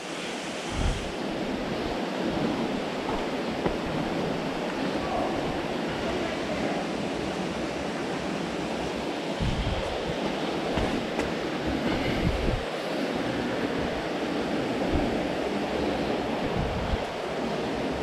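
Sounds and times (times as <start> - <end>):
stream rushing among boulders: 0.0 - 18.0.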